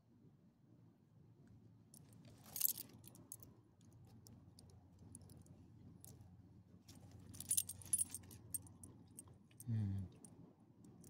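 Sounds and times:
dog tags jingling: 0:07.4 - 0:08.6.

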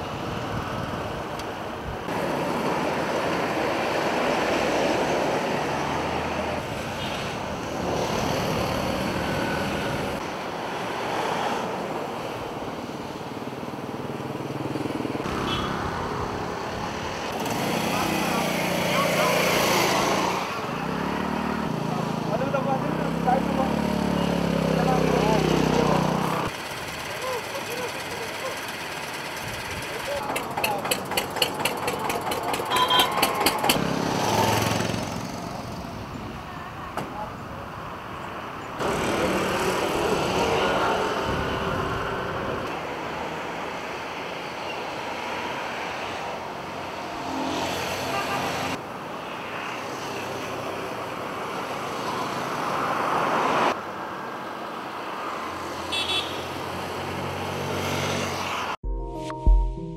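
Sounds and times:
road traffic: 0:00.0 - 0:58.8
motorcycle engines passing: 0:02.1 - 0:12.4, 0:13.1 - 0:36.6, 0:38.8 - 0:43.6
engine revving: 0:17.3 - 0:28.4, 0:29.9 - 0:35.5, 0:38.8 - 0:42.7
people's voices: 0:29.8 - 0:33.7.

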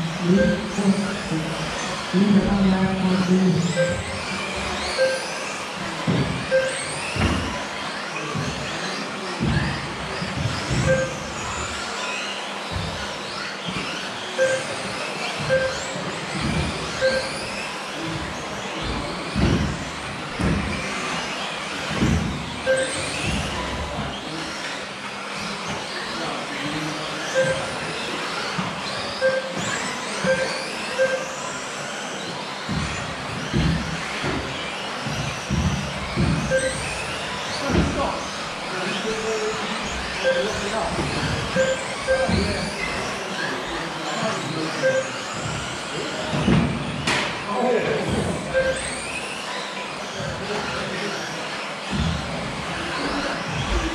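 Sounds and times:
rc car motors whining: 0:00.0 - 0:53.9
lap timer beeps: 0:00.3 - 0:00.7, 0:03.7 - 0:04.2, 0:05.0 - 0:05.4, 0:06.5 - 0:07.0, 0:10.9 - 0:11.2, 0:14.4 - 0:14.8, 0:15.5 - 0:15.9, 0:17.0 - 0:17.4, 0:22.7 - 0:23.0, 0:27.4 - 0:27.7, 0:29.2 - 0:29.6, 0:30.2 - 0:31.3, 0:36.5 - 0:36.8, 0:40.2 - 0:40.6, 0:41.5 - 0:42.5, 0:44.8 - 0:45.1, 0:48.5 - 0:48.8.

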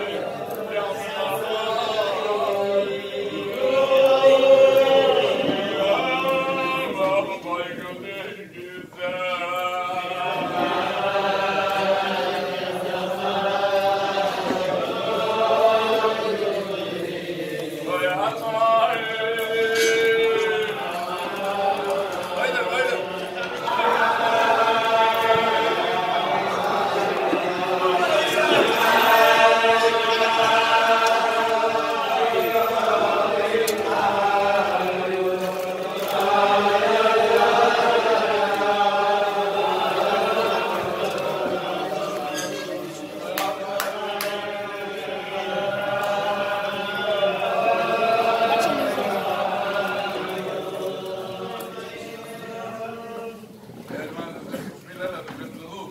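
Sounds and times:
men singing in unison: 0:00.0 - 0:54.2.

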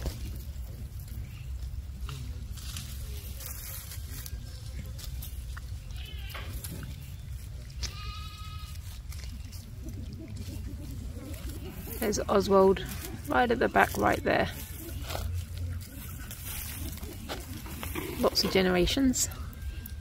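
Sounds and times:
monkeys calling: 0:09.5 - 0:19.0.

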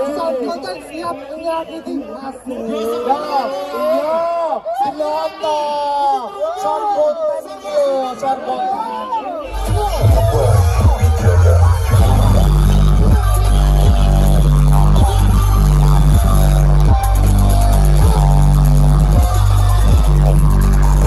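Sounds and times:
loud electronic dance music: 0:09.5 - 0:21.0.

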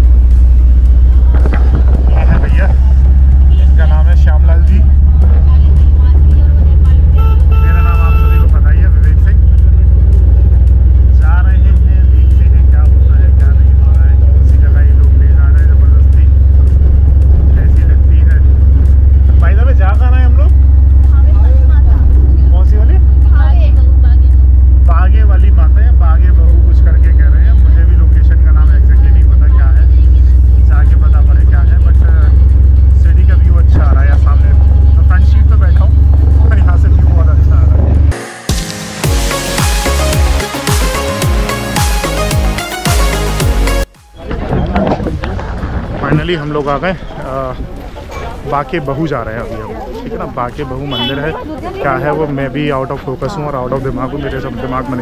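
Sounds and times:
auto-rickshaw engine rumble: 0:00.0 - 0:55.0
road noise: 0:00.0 - 0:55.0
faint voices: 0:44.1 - 0:55.0.

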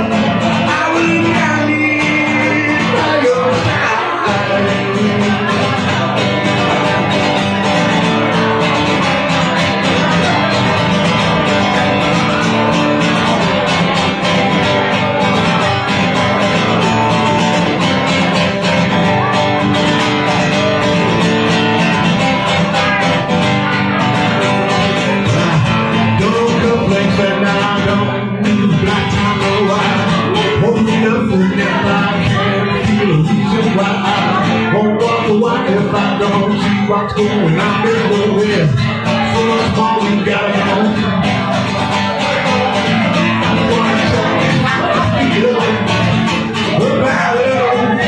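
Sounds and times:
acoustic guitar strumming: 0:00.0 - 0:48.0.

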